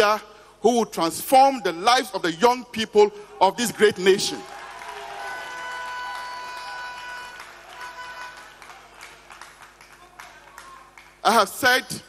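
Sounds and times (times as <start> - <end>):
audience applause: 4.4 - 11.2.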